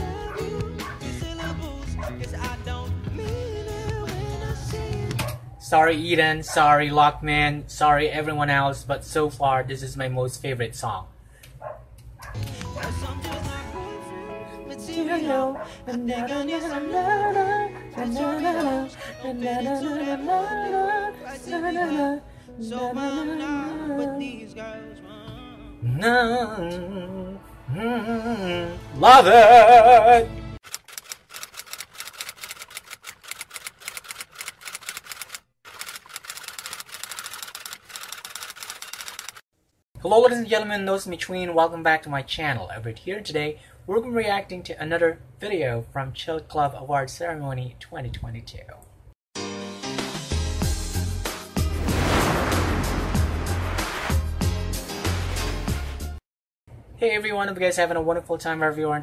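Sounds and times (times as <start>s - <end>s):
man singing pop live: 0.0s - 5.3s, 12.4s - 30.3s.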